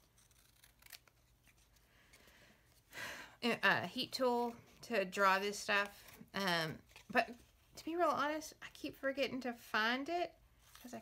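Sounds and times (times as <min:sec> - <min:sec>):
scissors cutting cardboard: 0:00.0 - 0:01.6.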